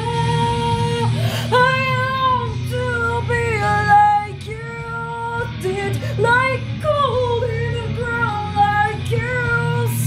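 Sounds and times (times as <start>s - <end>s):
woman singing ballad: 0.0s - 10.0s.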